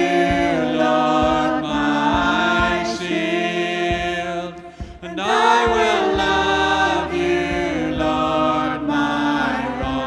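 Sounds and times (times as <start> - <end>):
voices singing in harmony: 0.0 - 10.0.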